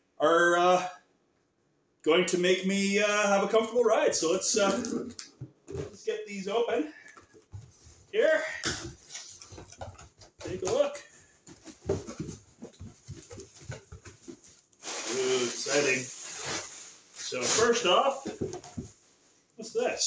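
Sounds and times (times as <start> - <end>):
cardboard flaps rustling: 8.8 - 19.1.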